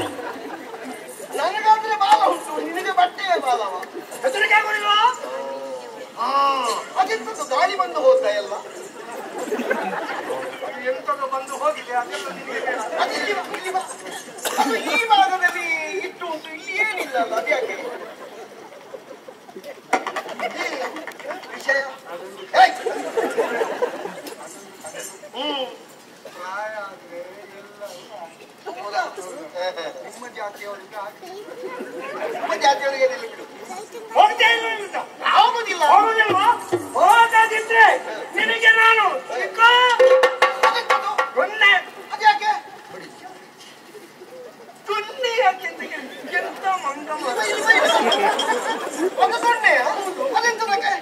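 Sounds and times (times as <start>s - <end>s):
overlapping voices talking: 0.0s - 51.0s.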